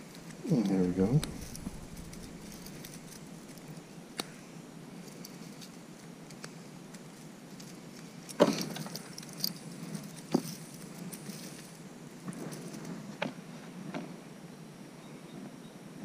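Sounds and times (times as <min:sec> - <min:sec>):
beaded necklace jangling: 0:01.3 - 0:03.9, 0:08.6 - 0:11.8.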